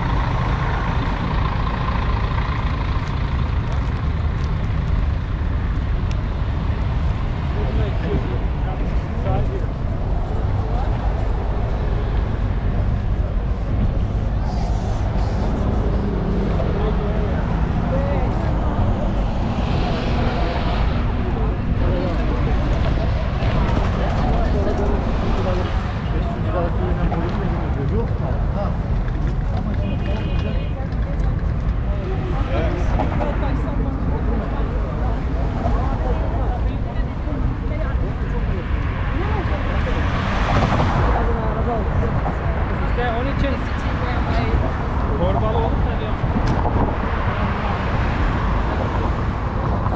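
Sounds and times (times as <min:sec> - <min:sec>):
bus passing close: 0:00.0 - 0:27.9
faint voices of passers-by: 0:00.0 - 0:49.9
traffic passing: 0:00.0 - 0:49.9.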